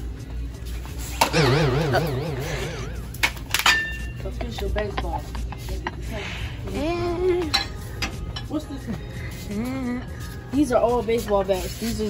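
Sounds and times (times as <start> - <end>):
low room rumble: 1.2 - 4.4.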